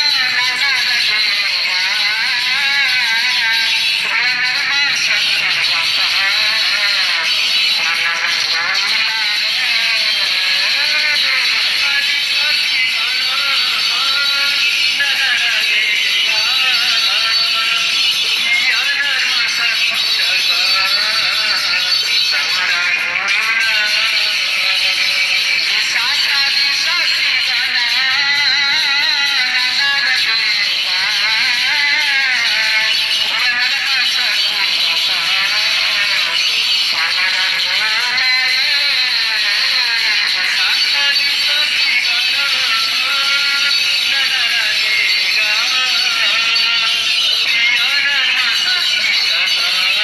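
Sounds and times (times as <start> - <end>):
person singing devotional song: 0.0 - 50.0.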